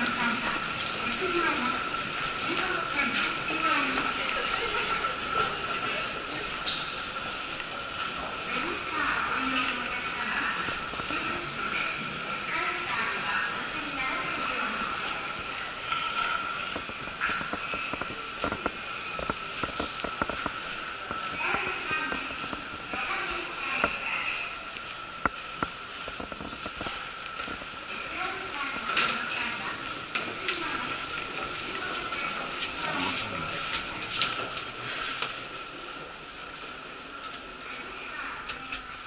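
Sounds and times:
steady high hum: 0.0 - 39.0
echoing voices: 28.0 - 34.9.

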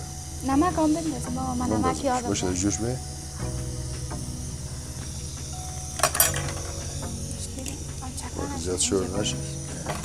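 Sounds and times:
background music: 0.0 - 10.0
glass pot lid clinking: 6.0 - 6.7.

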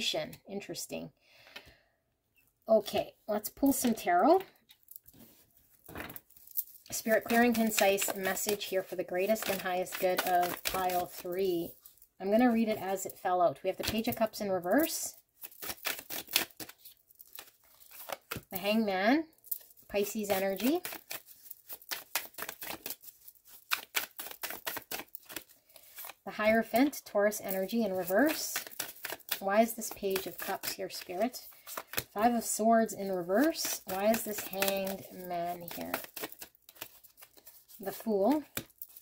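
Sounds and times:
cards rustling: 3.6 - 13.2, 13.8 - 18.8, 19.4 - 39.0.

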